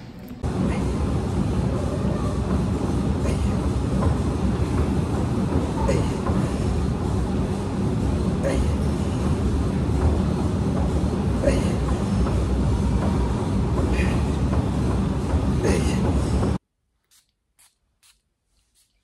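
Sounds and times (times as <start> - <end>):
continuous low rumble: 0.0 - 16.6.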